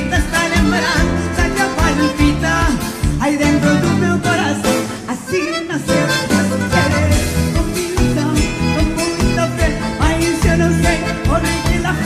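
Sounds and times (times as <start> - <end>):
bass line and beat: 0.0 - 4.8, 5.9 - 12.0
plucked guitar: 0.0 - 12.0.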